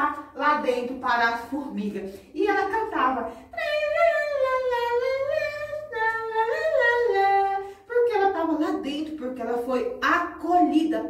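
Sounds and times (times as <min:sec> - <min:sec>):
woman singing wordless tune: 0:00.0 - 0:11.0.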